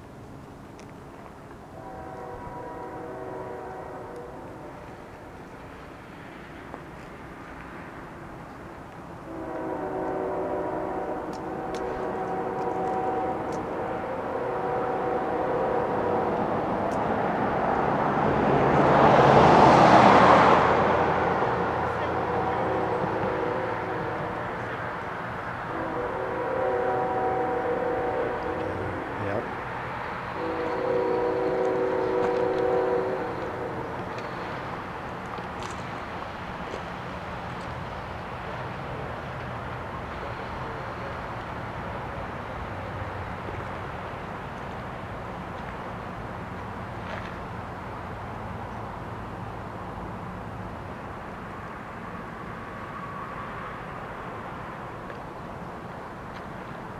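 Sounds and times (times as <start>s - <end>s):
distant train horn blasts: 1.7s - 5.3s, 9.2s - 18.0s, 20.0s - 35.8s.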